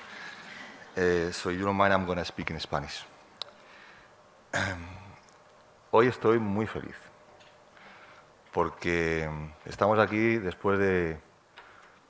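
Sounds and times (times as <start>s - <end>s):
man clearing his throat: 4.5s - 5.0s.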